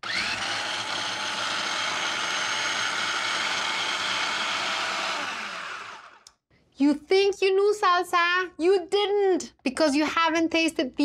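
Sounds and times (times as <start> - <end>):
food processor motor running: 0.0 - 6.3.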